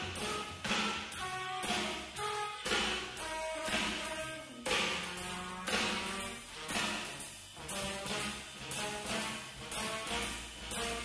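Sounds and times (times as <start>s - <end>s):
drum and cymbal strokes: 0.0s - 11.0s
saxophone and trombone: 0.0s - 11.0s
walking bass line: 0.0s - 11.0s.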